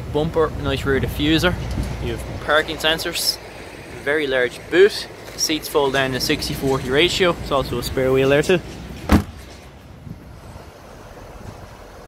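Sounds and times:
low outdoor background noise: 0.0 - 12.0
car boot lid thud: 9.1 - 9.4.

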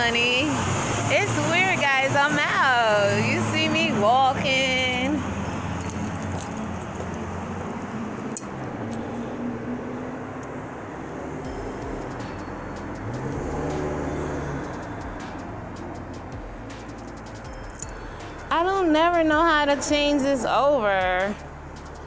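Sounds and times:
cars on a city street: 0.0 - 22.0.

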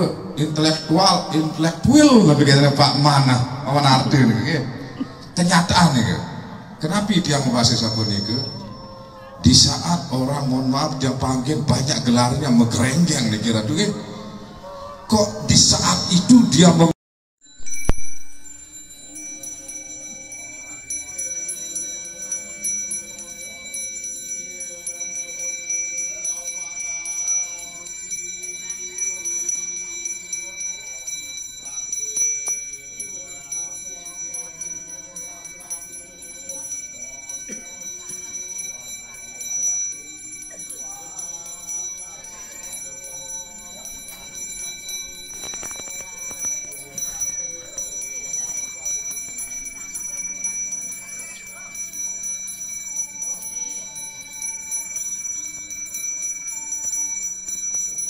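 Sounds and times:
hand bell ringing: 0.0 - 14.4, 17.4 - 58.0.

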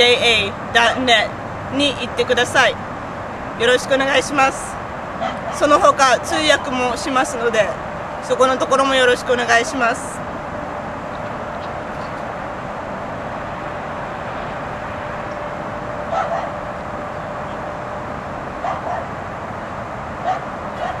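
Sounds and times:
dog barking: 5.2 - 5.6, 16.1 - 16.6, 18.6 - 19.1, 20.2 - 21.0.

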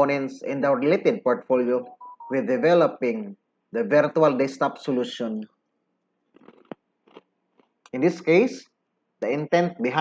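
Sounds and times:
narrator speaking: 0.0 - 5.6
mouth clicks and lip smacks: 6.3 - 8.0.

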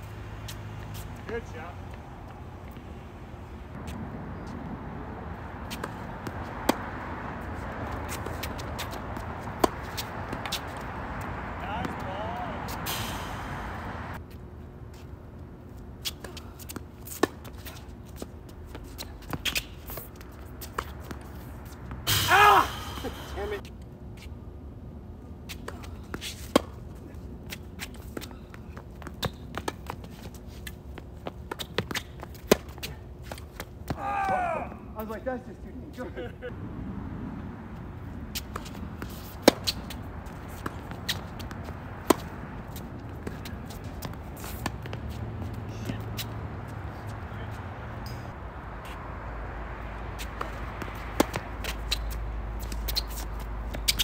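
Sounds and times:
tennis ball bouncing: 5.6 - 12.1, 16.0 - 22.2, 25.5 - 26.8, 27.5 - 34.4, 38.3 - 47.1, 50.2 - 54.0
rackets striking tennis ball: 5.6 - 13.3, 25.5 - 34.4, 38.3 - 46.4, 50.2 - 54.0
player shouting: 22.1 - 23.6, 34.0 - 35.0.

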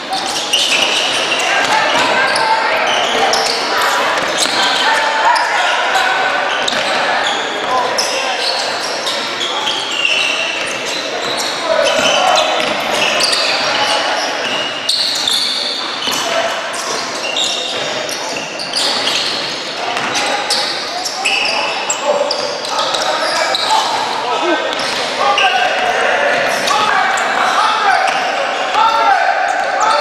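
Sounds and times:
people calling out: 0.0 - 19.3, 20.0 - 30.0
sneakers squeaking on court: 0.0 - 28.8.

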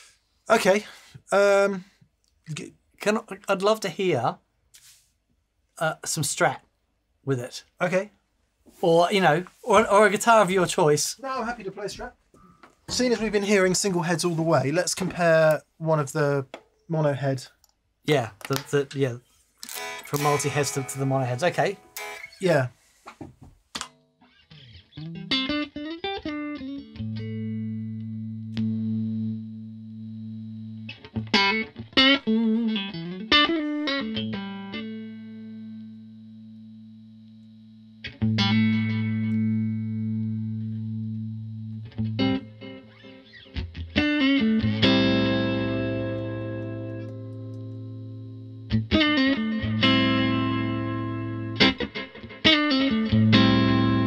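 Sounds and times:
electric guitar phrases with echo: 19.7 - 22.8, 30.8 - 36.0, 38.0 - 54.0.

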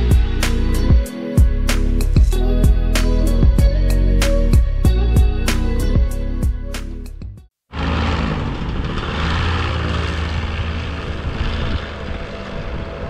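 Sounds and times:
microlight engine and propeller drone: 7.7 - 13.0.

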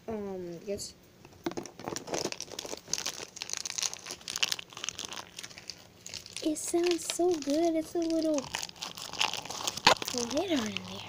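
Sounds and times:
crunchy slime crackling and popping: 1.6 - 11.0.

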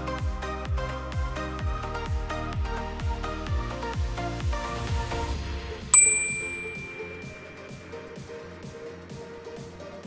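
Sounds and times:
bright bell ding: 6.0 - 7.5.

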